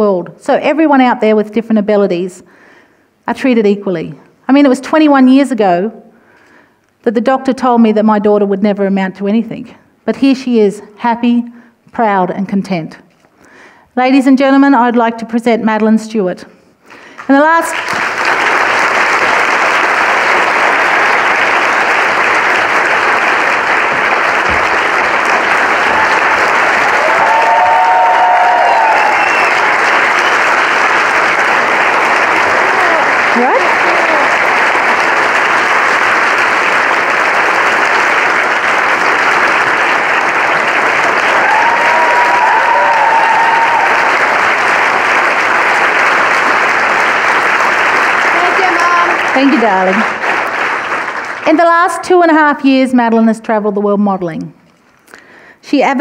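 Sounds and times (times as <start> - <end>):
audience applauding: 16.9 - 52.0
audience cheering: 17.9 - 51.3.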